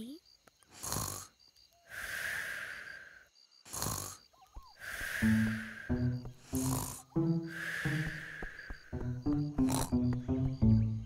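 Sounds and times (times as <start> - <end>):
cartoon snoring: 0.7 - 1.3, 3.6 - 8.4, 9.4 - 10.2.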